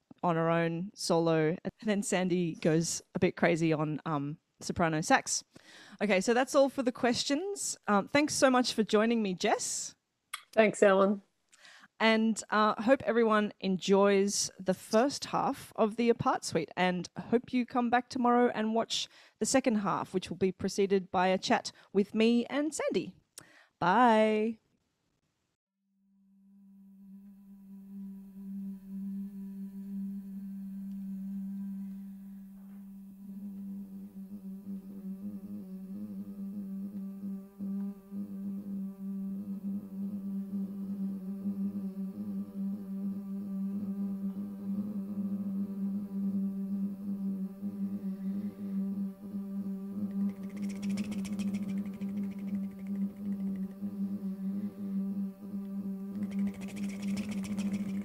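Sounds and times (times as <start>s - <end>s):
sustained sung tone: 26.1s - 58.0s
layered vocal drone: 33.3s - 58.0s
breathy vocal layer: 34.0s - 58.0s.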